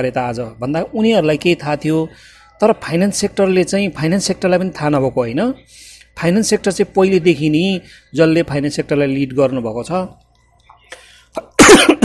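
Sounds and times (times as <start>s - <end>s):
man speaking: 0.0s - 10.2s
man coughing: 11.5s - 12.0s.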